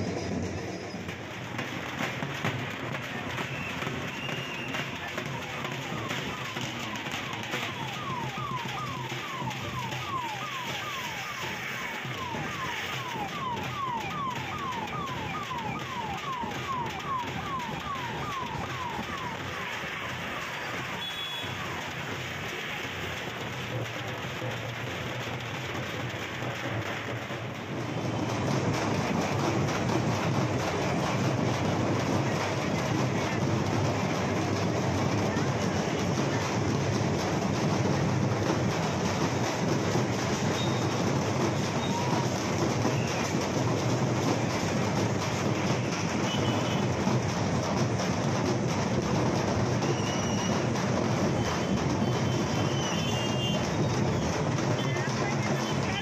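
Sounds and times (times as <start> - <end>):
street crowd din: 0.0 - 56.0
electronic siren-like whoop: 4.3 - 21.7.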